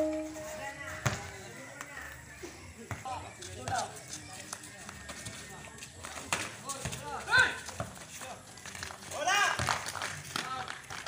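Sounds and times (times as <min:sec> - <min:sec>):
feet on concrete court: 0:00.0 - 0:11.0
basketball bouncing on concrete: 0:09.5 - 0:09.9.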